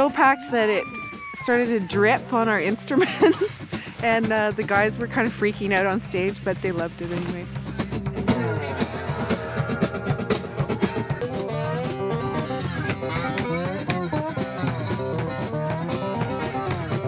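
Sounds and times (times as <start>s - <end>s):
live rock band playing: 7.5s - 17.0s.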